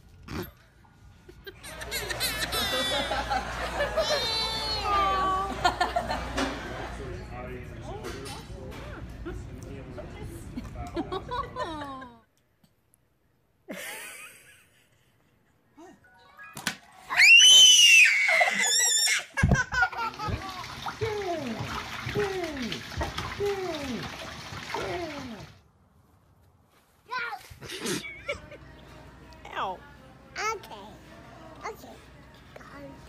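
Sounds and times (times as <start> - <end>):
toddler laughing: 1.6 - 5.5.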